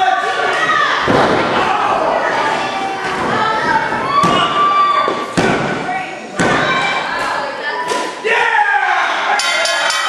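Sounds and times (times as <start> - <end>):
crowd shouting: 8.2 - 10.0.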